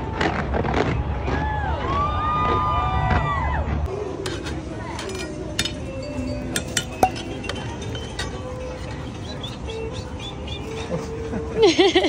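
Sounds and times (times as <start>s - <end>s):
metal paddle clanking on steel lids: 4.2s - 9.6s.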